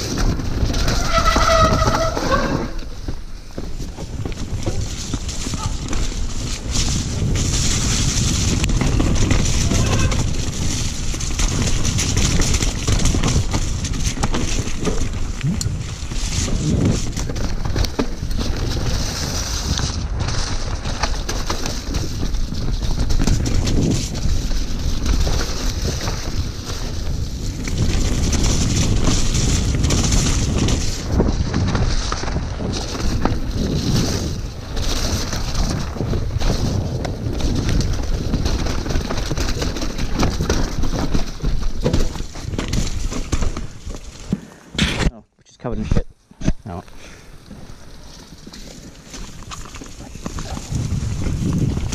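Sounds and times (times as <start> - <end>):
wind rushing on microphone: 0.0 - 41.8, 49.8 - 51.9
bike rattling and knocking: 0.0 - 45.1, 46.4 - 51.9.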